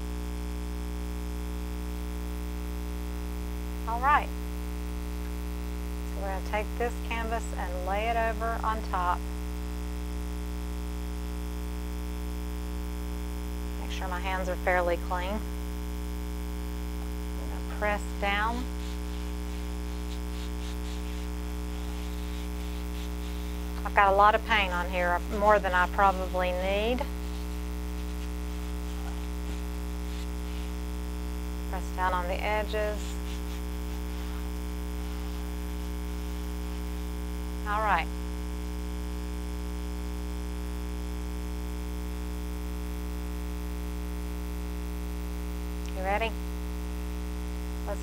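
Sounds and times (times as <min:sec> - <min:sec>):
electrical buzz: 0:00.8 - 0:42.3.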